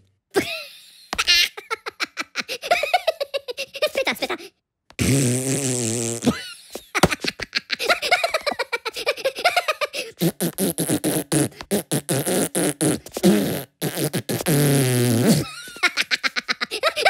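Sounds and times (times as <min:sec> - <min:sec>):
cartoon voices blowing raspberries: 0:05.0 - 0:06.4, 0:09.9 - 0:15.6.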